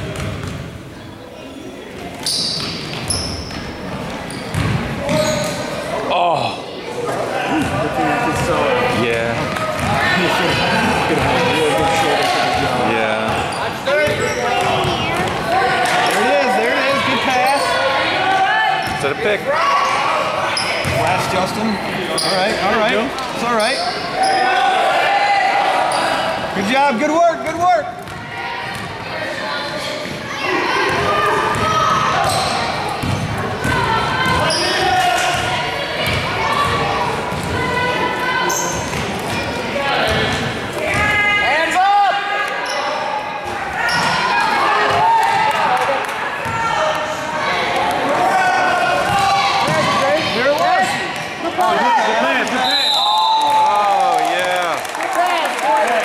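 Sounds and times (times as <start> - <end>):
mixed voices in hall: 0.0 - 56.0.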